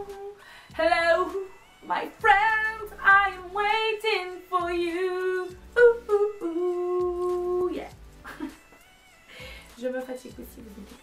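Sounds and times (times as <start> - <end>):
woman singing ooh note: 0.0 - 7.8
soft breathing: 0.4 - 0.8, 9.1 - 9.8.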